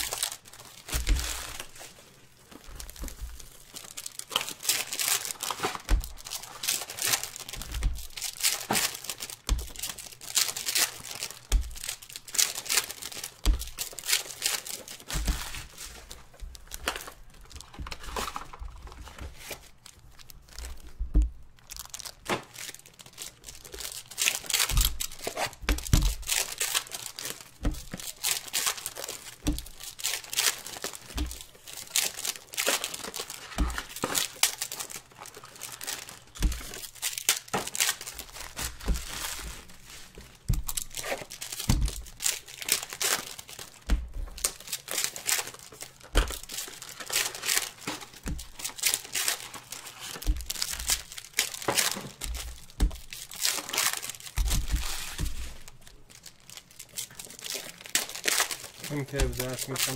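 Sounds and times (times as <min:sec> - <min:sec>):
foil wrappers crinkling and tearing: 0:00.0 - 0:59.9.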